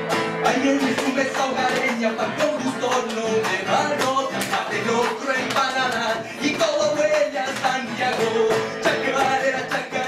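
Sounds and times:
man singing: 0.0s - 10.0s
nylon-string guitar strummed: 0.0s - 10.0s.

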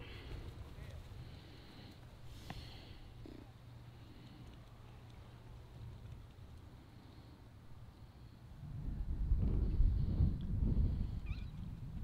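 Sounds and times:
faint wind rumble: 0.0s - 12.0s.

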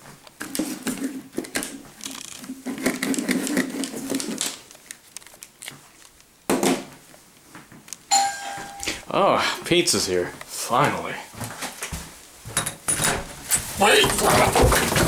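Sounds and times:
plastic headphones being handled: 0.1s - 6.3s.

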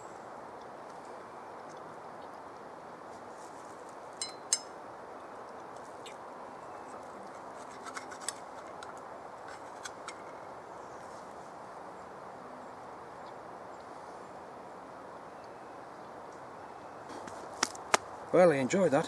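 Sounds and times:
soft hiss: 0.0s - 19.0s
sticks clinking on metal pan: 4.2s - 4.7s.

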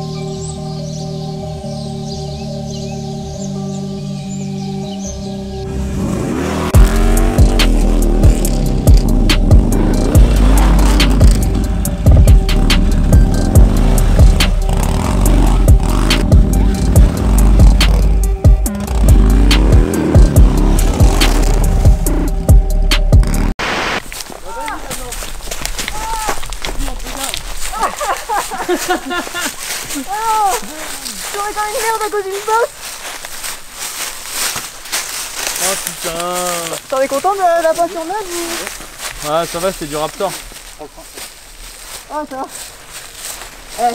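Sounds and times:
motorcycle engine revving: 5.1s - 23.6s
music with heavy bass beat: 5.9s - 23.6s.

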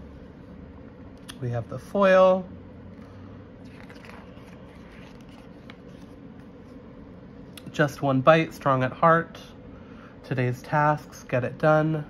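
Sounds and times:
sticker sheets crinkling and rustling: 3.6s - 6.2s
page being turned: 3.6s - 6.8s.

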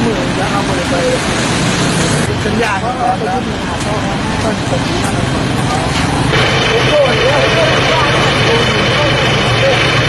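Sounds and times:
faint voices talking: 0.0s - 10.0s
roadside hiss: 0.0s - 10.0s.

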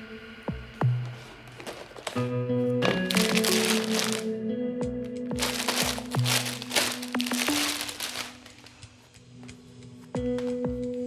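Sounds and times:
background music held notes: 0.0s - 11.0s
plastic wrapper crinkling: 2.8s - 4.3s, 5.4s - 8.8s.

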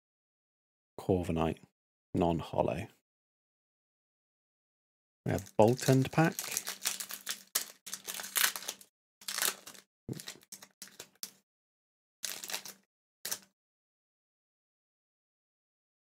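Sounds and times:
foil wrapper tearing and crinkling: 5.3s - 11.4s, 12.2s - 13.5s.

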